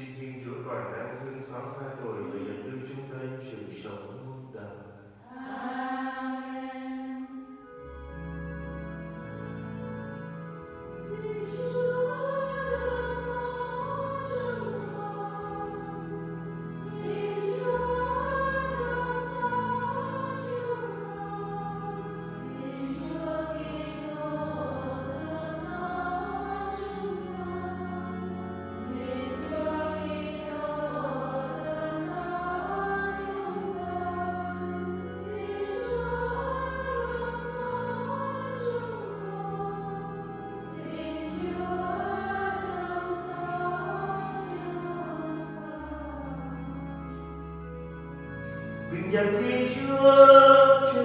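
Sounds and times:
congregation singing a hymn: 0.0 - 51.0
long held bass notes: 7.6 - 51.0.

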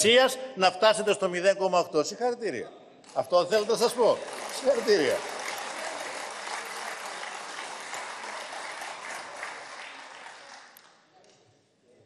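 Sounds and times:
applause in large chamber: 3.1 - 11.4.

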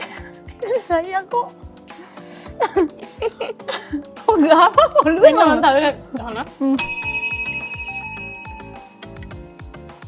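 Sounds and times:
background music with steady beat: 0.0 - 10.0
bright bell ding: 6.8 - 9.5.

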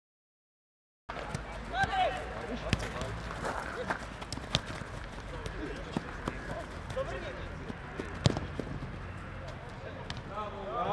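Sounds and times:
distant players shouting: 1.2 - 10.9
football being kicked: 8.0 - 8.8.

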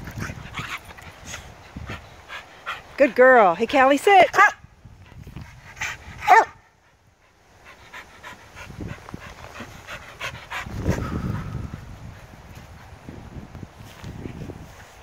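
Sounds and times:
dog panting: 0.0 - 3.1, 5.0 - 12.9.

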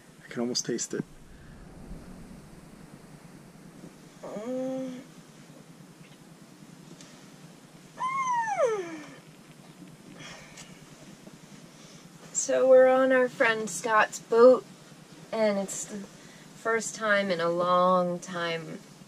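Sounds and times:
woman humming: 4.2 - 5.1, 8.0 - 9.2
woman sighing: 4.2 - 5.1.

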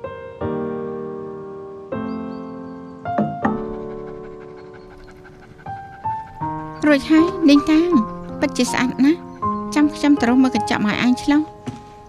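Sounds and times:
soft piano music: 0.0 - 12.0.

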